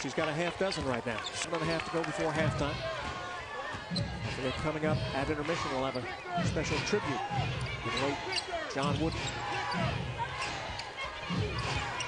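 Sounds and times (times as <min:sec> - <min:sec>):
arena noise: 0:00.0 - 0:12.0.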